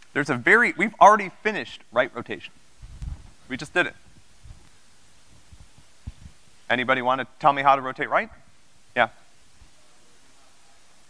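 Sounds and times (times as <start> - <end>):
faint low thuds: 2.6 - 6.6.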